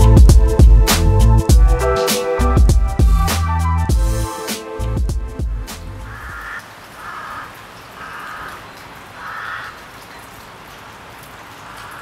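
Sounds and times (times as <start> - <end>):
outdoor ambient hiss: 5.7 - 12.0
crow cawing: 6.1 - 10.1, 11.6 - 12.0.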